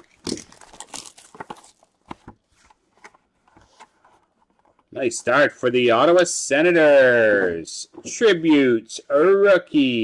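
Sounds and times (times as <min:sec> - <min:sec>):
cardboard clicks and rustles: 0:00.0 - 0:04.9.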